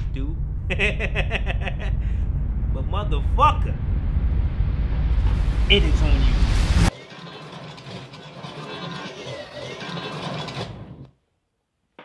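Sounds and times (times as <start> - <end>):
mechanical whirring and rattling: 6.9 - 11.1.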